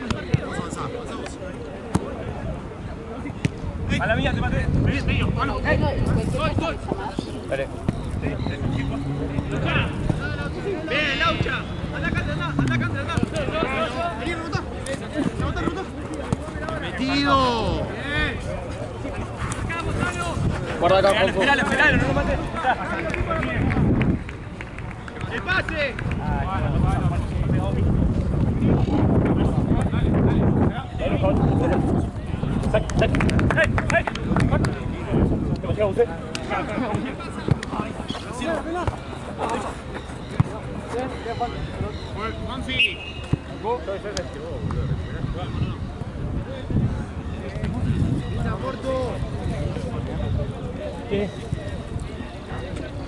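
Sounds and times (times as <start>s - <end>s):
players calling out: 6.7s - 23.6s.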